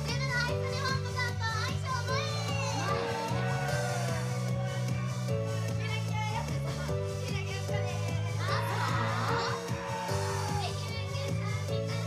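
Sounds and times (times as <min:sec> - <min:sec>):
pop song over speakers: 0:00.0 - 0:12.0
steady bass line: 0:00.0 - 0:12.0.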